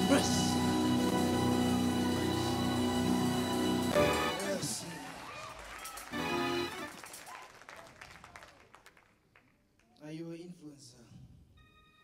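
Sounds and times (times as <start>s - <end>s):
congregation clapping: 3.6s - 9.9s.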